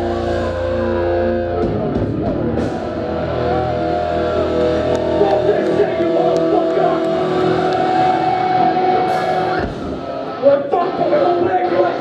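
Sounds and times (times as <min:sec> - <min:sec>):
electric guitars sustained chord: 0:00.0 - 0:12.0.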